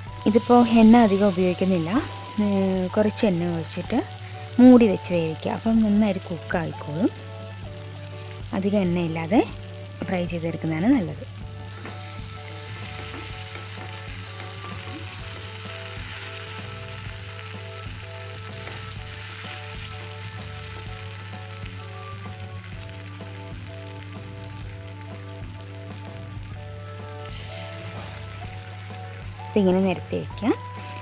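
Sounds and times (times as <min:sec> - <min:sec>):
chicken sizzling in oil: 0:00.0 - 0:31.0.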